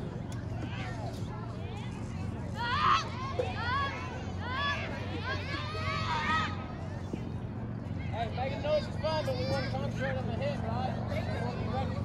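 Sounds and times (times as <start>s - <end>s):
chatter of voices calling: 0.1s - 12.0s.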